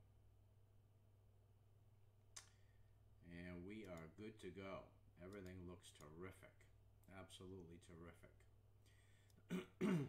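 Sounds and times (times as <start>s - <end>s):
faint click: 2.3s - 2.7s.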